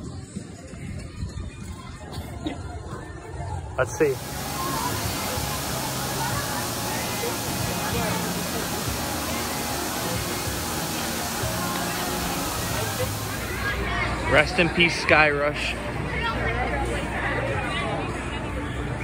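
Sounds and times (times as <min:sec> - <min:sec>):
faint crowd chatter: 0:00.0 - 0:19.0
steady rushing noise: 0:03.9 - 0:14.0.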